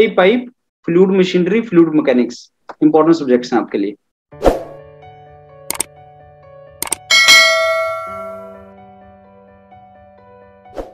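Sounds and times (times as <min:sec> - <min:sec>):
notification bell chime: 0:07.1 - 0:08.7.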